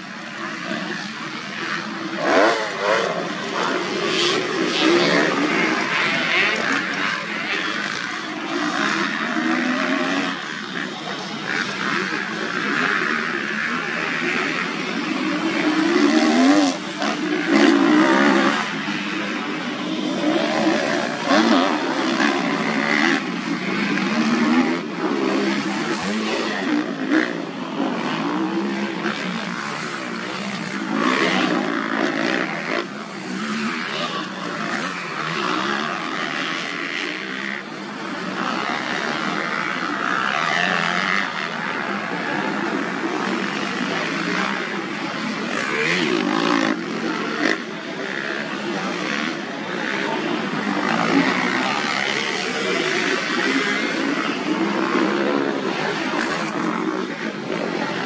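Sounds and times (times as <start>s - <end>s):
motocross bike engines revving: 0.0s - 58.0s.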